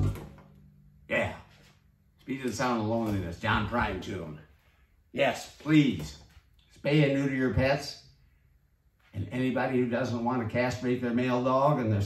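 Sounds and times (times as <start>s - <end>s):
man speaking: 1.1s - 8.1s, 9.1s - 12.0s.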